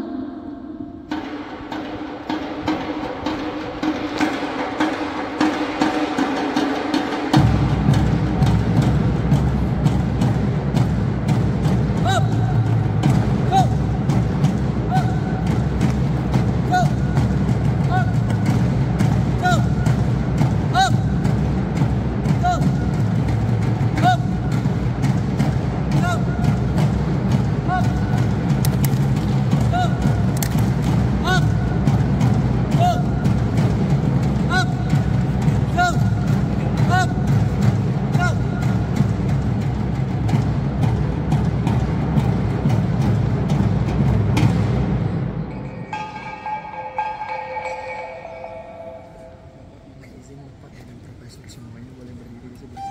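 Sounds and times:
steady drumming: 1.1s - 52.9s
bright melodic notes: 45.7s - 50.0s.

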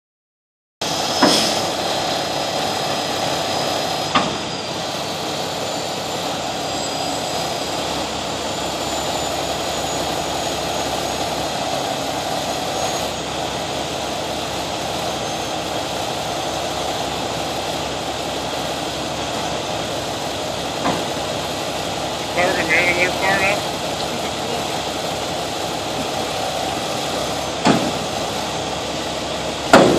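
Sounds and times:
diesel engine running: 0.8s - 29.9s.

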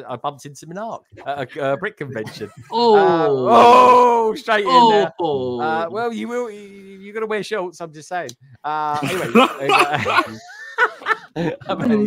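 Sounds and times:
people speaking: 0.0s - 12.0s
people laughing: 1.2s - 5.9s, 8.9s - 12.0s.

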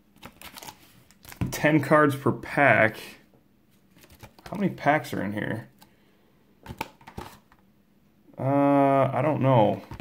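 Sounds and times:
faint handling rustles and clicks: 3.7s - 4.8s.

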